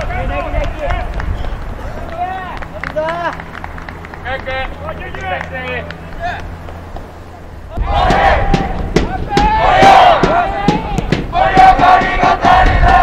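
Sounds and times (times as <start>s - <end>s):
players shouting: 0.0s - 13.0s.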